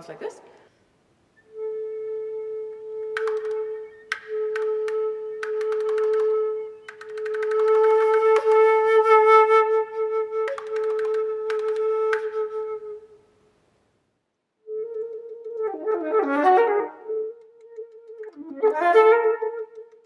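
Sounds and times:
flute holding a steady note: 1.4s - 13.3s, 14.6s - 20.0s
sharp percussive flute clicks: 3.1s - 9.1s, 10.4s - 12.7s, 14.8s - 15.8s, 17.3s - 18.8s, 19.4s - 20.0s.

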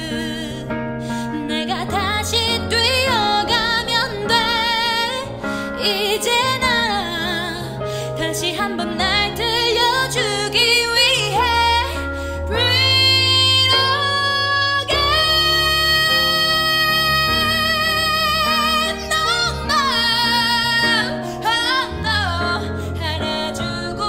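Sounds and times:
woman singing pop ballad: 0.0s - 24.0s.

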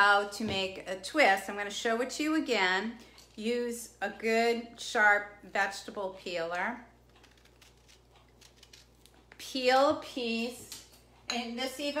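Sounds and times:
vegetable peeler scratching orange peel: 7.1s - 9.2s.

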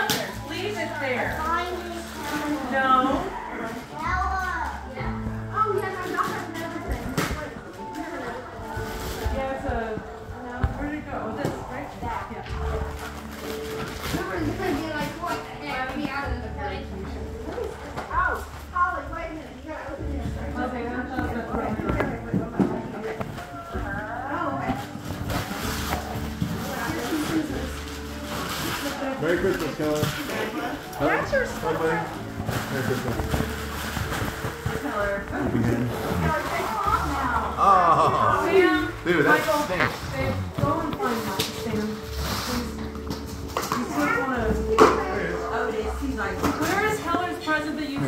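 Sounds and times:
faint background music: 0.0s - 48.0s
indistinct voices talking: 34.8s - 41.3s.

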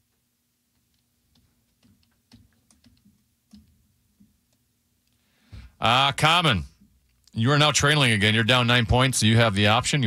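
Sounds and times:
computer keyboard clicking: 0.9s - 3.8s.

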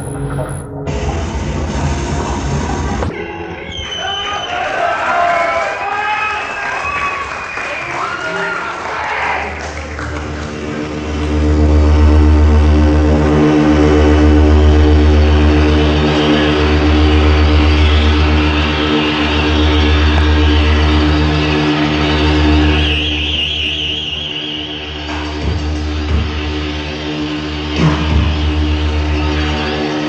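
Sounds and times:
higher wavering tone: 0.0s - 1.6s
buzzing chord: 0.0s - 2.2s
droning synthesizer bass: 0.0s - 3.7s, 9.5s - 30.0s.

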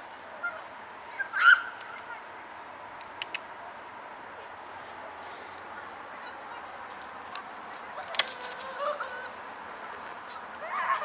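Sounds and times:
outdoor background noise: 0.0s - 11.0s
bird calling: 0.4s - 2.3s, 7.9s - 9.6s.

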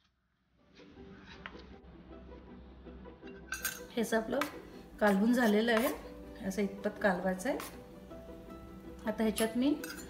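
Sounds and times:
metal spoon clinking against bowls: 3.5s - 6.0s, 9.3s - 10.0s.

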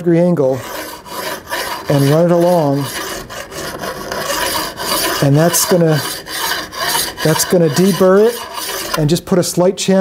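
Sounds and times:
hand file rasping on steel: 0.5s - 9.1s.

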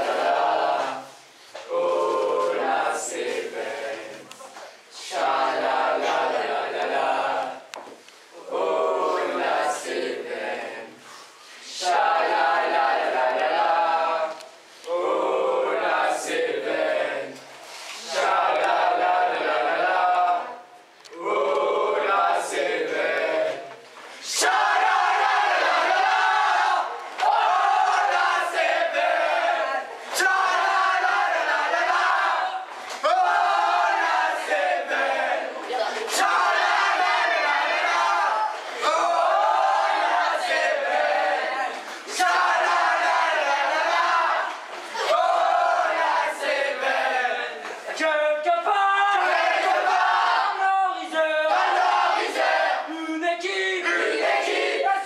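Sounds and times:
boys chanting in unison: 5.0s - 7.7s, 18.0s - 55.0s.

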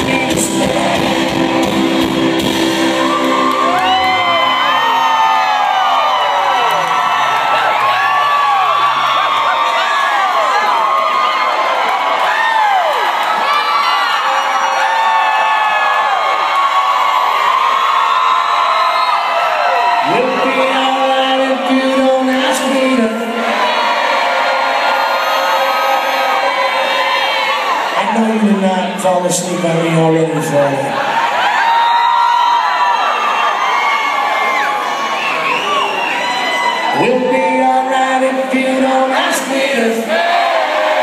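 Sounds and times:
live rock band playing: 0.0s - 5.5s
audience cheering and whooping: 0.2s - 28.6s, 30.9s - 41.0s.

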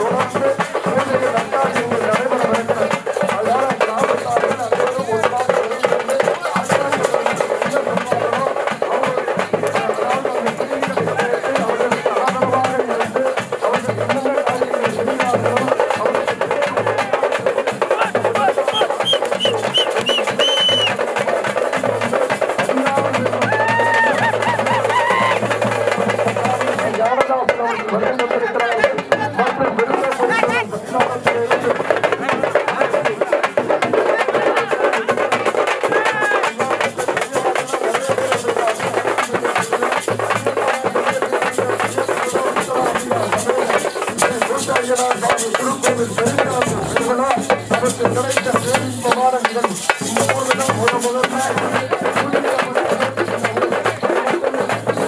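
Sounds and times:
crowd voices and shouts: 0.0s - 55.0s
drum band beating fast rhythm: 0.0s - 55.0s.

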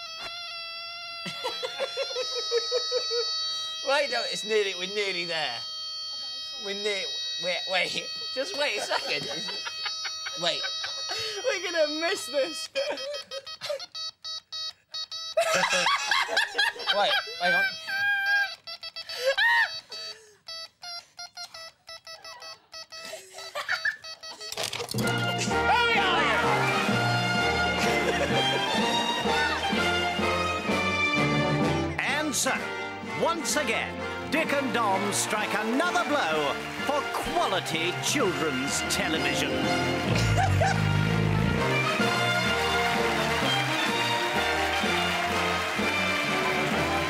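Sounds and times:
giggling laughter: 0.0s - 3.8s, 8.1s - 14.0s, 15.4s - 20.4s, 22.1s - 24.9s, 27.8s - 29.5s, 40.1s - 40.9s
continuous electronic buzzer tone: 0.0s - 15.9s, 16.6s - 27.8s.

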